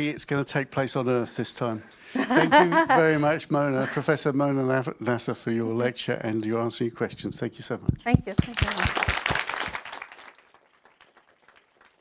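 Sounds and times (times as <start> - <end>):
audience applause: 8.3 - 12.0.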